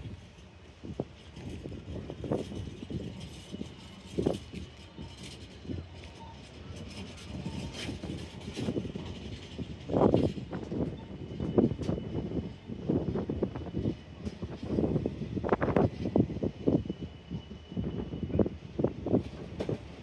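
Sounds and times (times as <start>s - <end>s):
freight train wheels clattering: 0.0s - 16.8s, 19.1s - 20.0s
loud knocks of train wagons: 19.2s - 20.0s.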